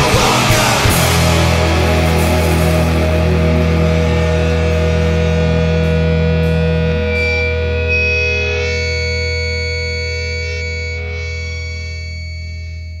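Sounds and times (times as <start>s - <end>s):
distorted electric guitar chord ringing: 0.0s - 13.0s.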